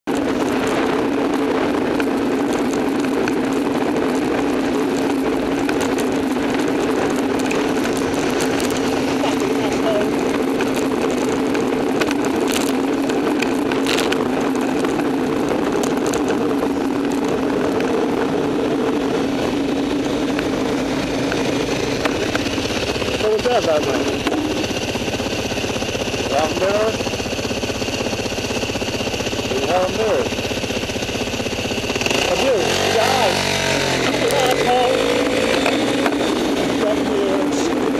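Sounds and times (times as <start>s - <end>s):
road noise: 0.0s - 37.9s
wind noise on microphone: 0.0s - 37.9s.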